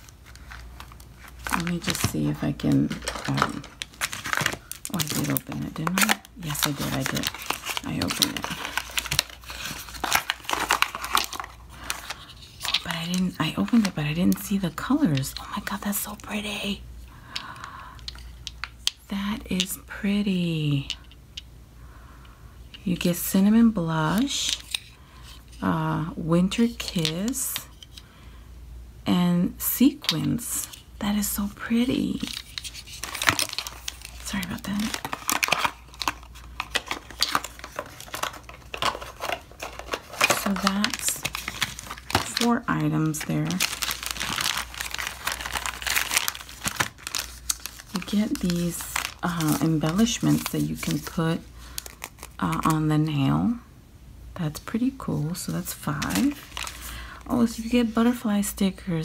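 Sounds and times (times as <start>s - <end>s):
plastic bag crinkling: 0.0s - 16.4s, 32.0s - 52.8s, 55.7s - 58.0s.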